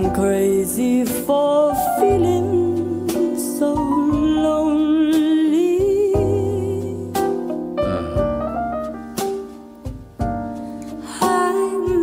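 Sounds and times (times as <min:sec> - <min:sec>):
woman singing with vibrato: 0:00.0 - 0:07.2, 0:11.1 - 0:12.0
instrumental accompaniment: 0:00.0 - 0:12.0.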